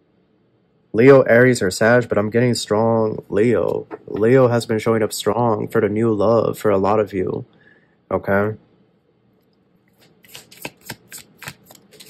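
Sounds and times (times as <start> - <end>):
cards being shuffled: 9.9 - 12.0
sharp card flicks: 10.0 - 12.0.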